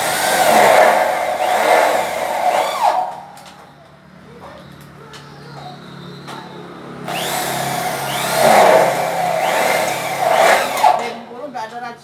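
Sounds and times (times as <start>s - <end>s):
power tool running: 0.0s - 3.5s, 7.0s - 11.3s.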